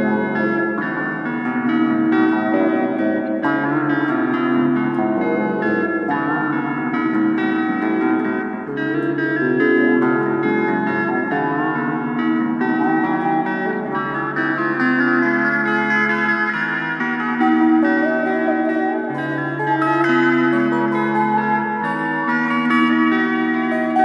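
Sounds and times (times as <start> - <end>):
blues-rock guitar playing: 0.0 - 24.0.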